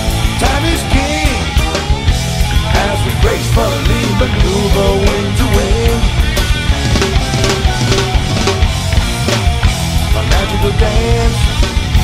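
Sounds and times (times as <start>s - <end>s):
bass: 0.0s - 12.0s
drum kit: 0.0s - 12.0s.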